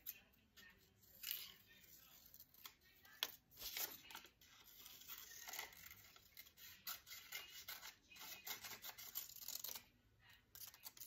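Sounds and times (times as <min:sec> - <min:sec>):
scissors snipping paper: 0:01.1 - 0:09.9, 0:10.5 - 0:11.0.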